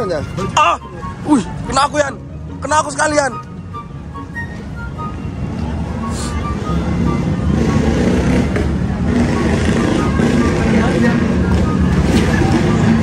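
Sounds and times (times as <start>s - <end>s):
street traffic noise: 0.0s - 13.0s
vehicle engine rumbling: 0.0s - 13.0s.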